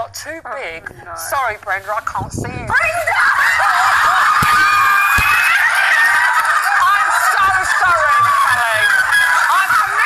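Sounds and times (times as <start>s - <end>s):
women laughing and shrieking: 2.7s - 10.0s.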